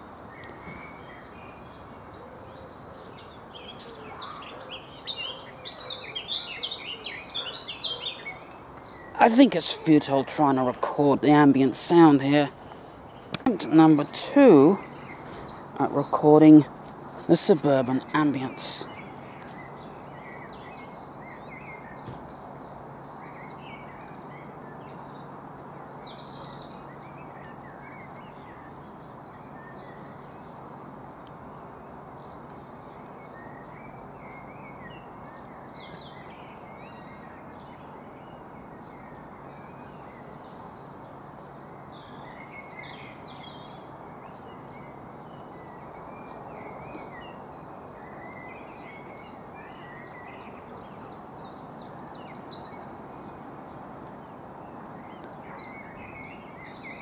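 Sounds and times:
birds chirping: 0.0s - 57.0s
distant background hum: 0.0s - 57.0s.

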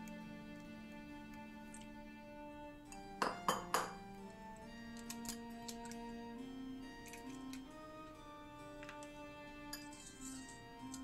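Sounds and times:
soft background music: 0.0s - 11.0s
egg shell tapping on bowl: 3.2s - 4.0s.

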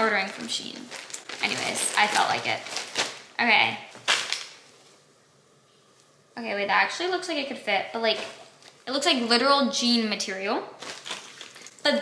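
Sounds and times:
plastic packaging rustling: 0.0s - 5.0s, 10.8s - 12.0s.

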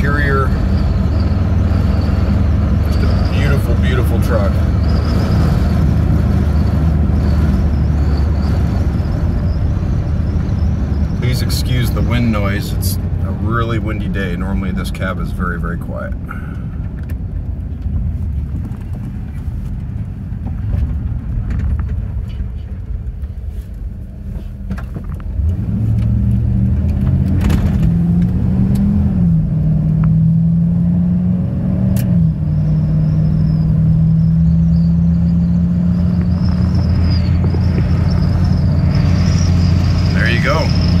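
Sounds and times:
road noise: 0.0s - 41.0s
truck engine drone: 0.0s - 41.0s
wind noise: 32.6s - 41.0s.

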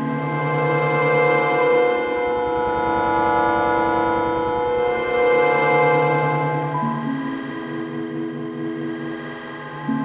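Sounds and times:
sustained synth drone chord: 0.0s - 10.0s.

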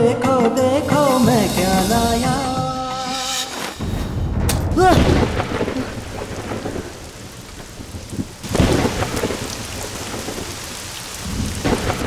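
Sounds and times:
loud thunder clap and rumble: 4.2s - 12.0s
steady rain: 4.8s - 12.0s.

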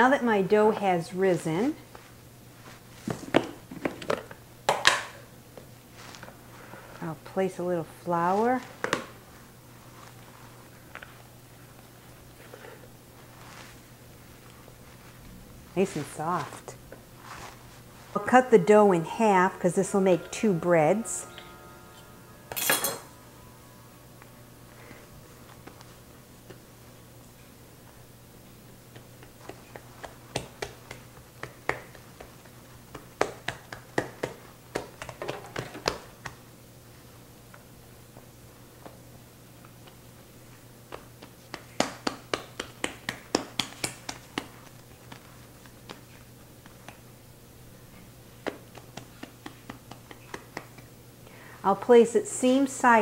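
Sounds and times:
steady low hum: 5.3s - 53.0s
dough rustling in plastic bowl: 8.0s - 19.5s
hands slapping bread dough: 28.9s - 36.5s, 40.8s - 47.2s, 48.0s - 51.0s.

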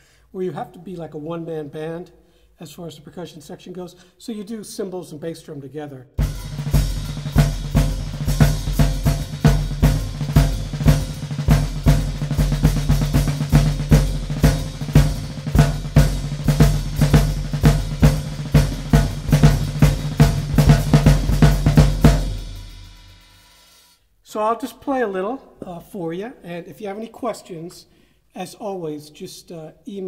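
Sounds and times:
bass drum: 6.2s - 23.4s
snare drum groove: 6.2s - 23.9s.

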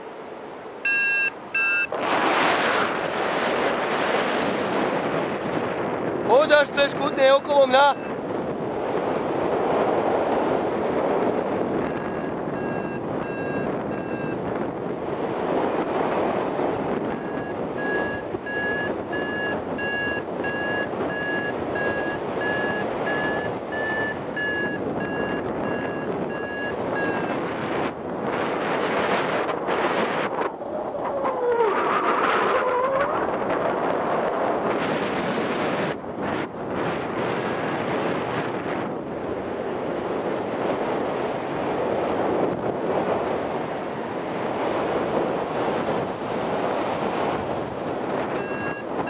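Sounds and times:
wind rushing past microphone: 0.0s - 49.0s
variometer beeping: 0.8s - 2.0s, 7.0s - 8.2s, 11.8s - 14.5s, 17.0s - 27.8s, 48.2s - 49.0s.

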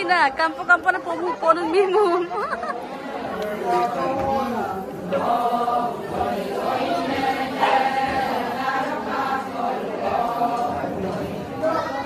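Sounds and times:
woman's voice: 0.0s - 2.6s
chatter: 0.0s - 12.0s
group chanting in long held notes: 2.8s - 12.0s.

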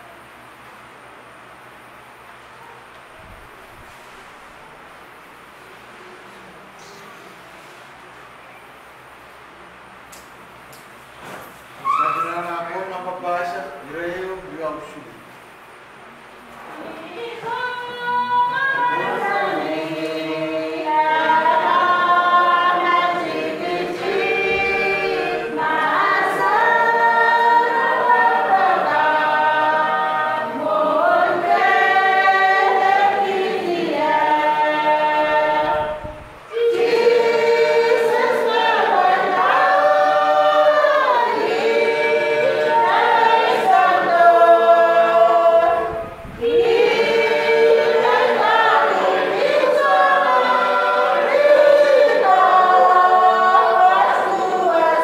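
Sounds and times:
group singing a hymn unaccompanied: 16.6s - 55.0s.

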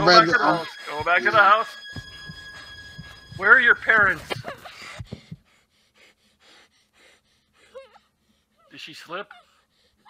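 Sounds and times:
girl gasping for breath: 4.5s - 8.6s
girl whimpering: 7.6s - 8.1s.

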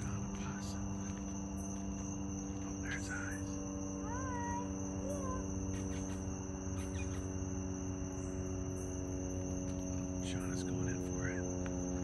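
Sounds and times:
crickets chirping: 0.0s - 12.0s
electrical hum: 0.0s - 12.0s.

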